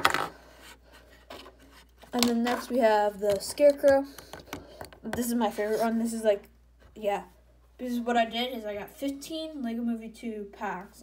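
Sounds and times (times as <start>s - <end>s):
plastic pieces clacking: 0.0s - 0.4s
plastic pieces scraping: 0.0s - 4.7s.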